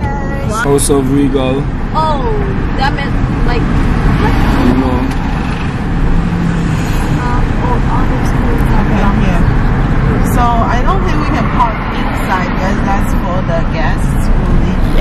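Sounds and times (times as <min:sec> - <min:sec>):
car road noise rumble: 0:00.0 - 0:15.0
people talking indistinctly: 0:00.0 - 0:15.0.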